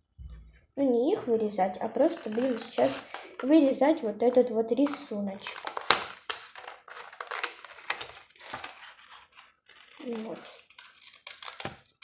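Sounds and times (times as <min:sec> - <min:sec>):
scissors cutting cardboard: 0:01.8 - 0:03.2, 0:05.4 - 0:12.0.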